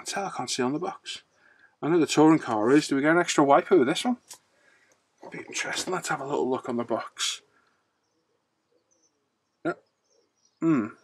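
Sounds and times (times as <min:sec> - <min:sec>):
faint high chirps: 0:05.2 - 0:11.0.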